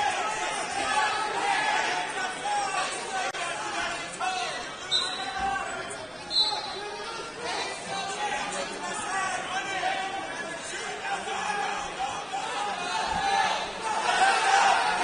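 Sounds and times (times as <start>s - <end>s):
crowd chattering and calling out: 0.0s - 15.0s.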